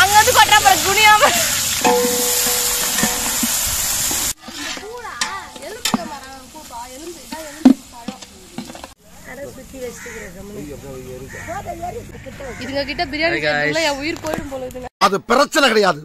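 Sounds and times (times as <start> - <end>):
onions sizzling in hot oil: 0.0 - 11.4
metal ladle scraping pot: 1.6 - 9.0.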